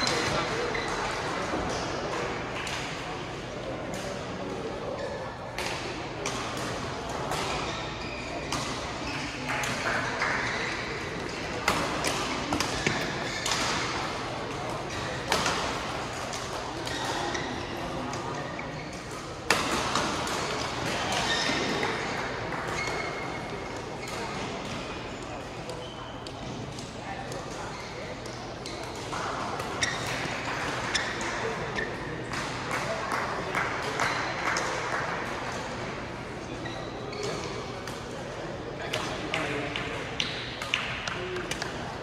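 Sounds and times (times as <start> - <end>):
murmur of crowd chatter: 0.0 - 42.0.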